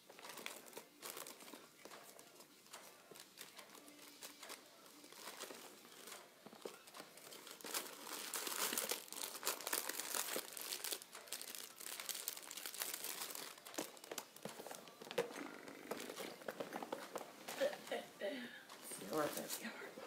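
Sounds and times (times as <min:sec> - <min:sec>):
packaging crinkling and rustling: 0:00.0 - 0:17.7.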